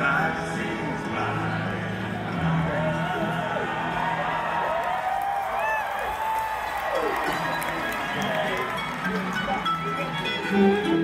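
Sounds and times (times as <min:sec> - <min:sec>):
bluegrass band playing: 0:00.0 - 0:04.4, 0:07.0 - 0:11.0
acoustic guitar: 0:00.0 - 0:05.0, 0:07.0 - 0:11.0
crowd cheering: 0:01.6 - 0:11.0
fiddle: 0:08.2 - 0:11.0.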